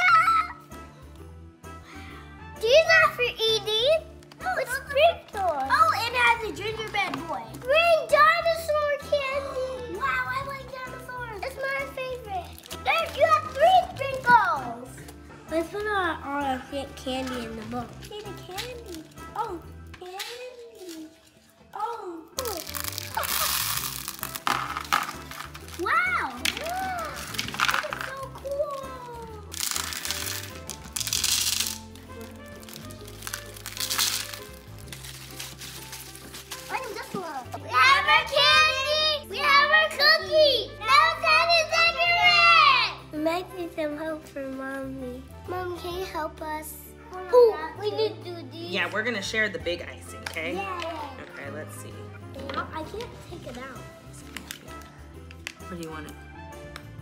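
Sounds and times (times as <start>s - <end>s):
background music: 0.0s - 57.0s
plastic candy packets crinkling: 4.1s - 7.7s, 12.4s - 14.3s, 16.9s - 21.7s, 22.3s - 37.6s, 53.0s - 56.2s
sweets tipped into a bowl: 22.4s - 37.2s.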